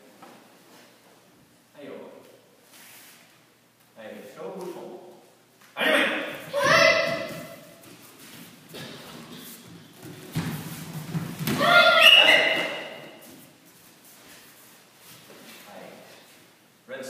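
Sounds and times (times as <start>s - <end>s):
children's karate shouts: 5.8s - 7.8s, 11.4s - 13.2s
bare feet thudding on mats: 6.5s - 13.5s.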